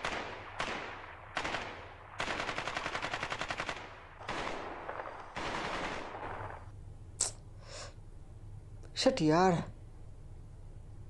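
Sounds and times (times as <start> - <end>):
gun blasts with echo: 0.0 - 6.7
video game automatic gunfire: 0.0 - 6.7.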